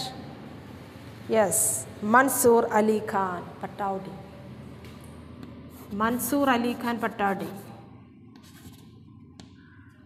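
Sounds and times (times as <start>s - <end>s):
chalk scratching on chalkboard: 5.7s - 6.2s, 8.3s - 9.0s
chalk tap: 8.3s - 9.6s.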